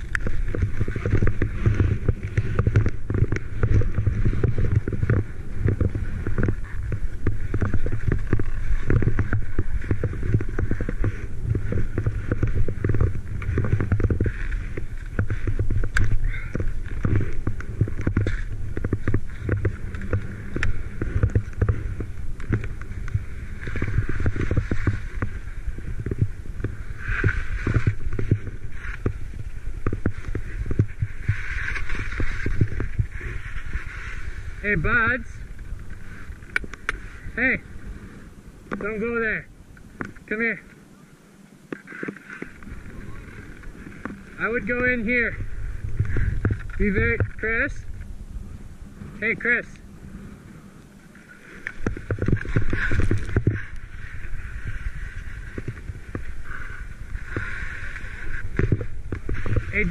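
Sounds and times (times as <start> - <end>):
wind buffeting microphone: 0.0 - 40.6, 42.5 - 59.9
skis scraping over snow: 0.0 - 41.1, 41.7 - 59.9.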